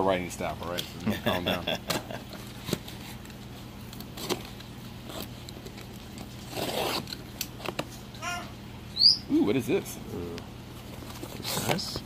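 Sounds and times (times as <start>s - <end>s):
blade ripping through tape: 6.4s - 7.2s.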